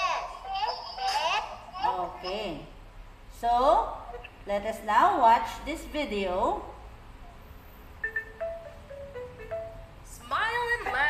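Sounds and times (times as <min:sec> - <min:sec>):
xylophone jingle melody: 0:08.0 - 0:10.1.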